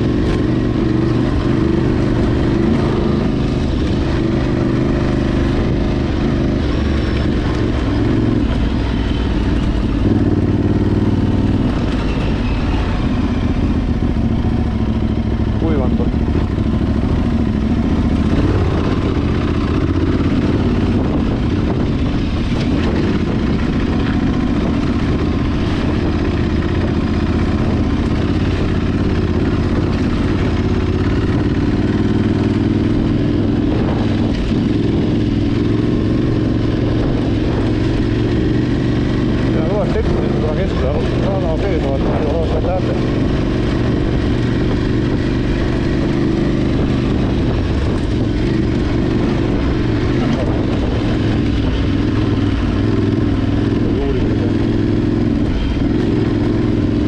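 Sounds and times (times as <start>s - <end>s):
motorcycle engine running: 0.0s - 57.0s
wind rush: 0.0s - 57.0s
tyre noise on dirt track: 31.4s - 57.0s.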